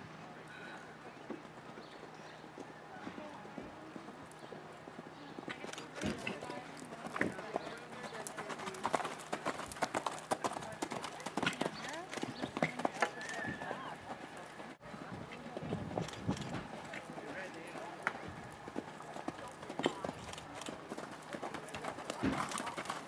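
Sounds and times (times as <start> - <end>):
horse hoofbeats on sand: 1.4 - 23.0.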